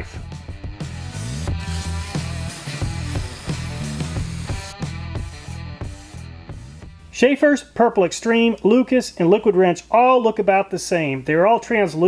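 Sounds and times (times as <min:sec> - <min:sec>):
background music with bass line: 0:00.0 - 0:07.3
aerosol can spraying: 0:01.0 - 0:06.0.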